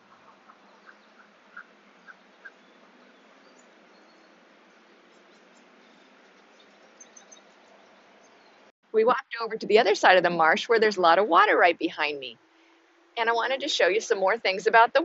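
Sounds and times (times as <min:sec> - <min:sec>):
bird calls: 0:00.0 - 0:08.7
low background hiss: 0:00.0 - 0:15.0.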